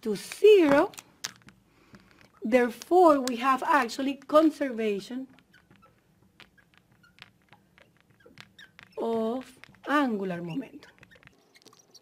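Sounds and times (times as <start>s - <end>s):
marker squeaking on glass: 4.9s - 12.0s.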